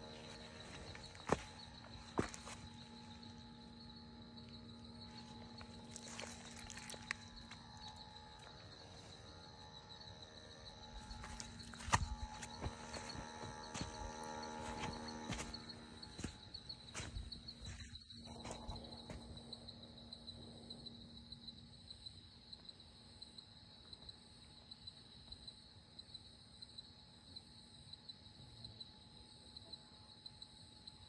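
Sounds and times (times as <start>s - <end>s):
insects trilling: 0.0s - 31.0s.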